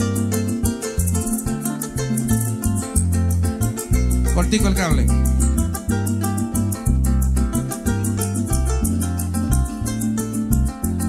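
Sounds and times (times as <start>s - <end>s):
harp and bass band playing: 0.0s - 11.0s.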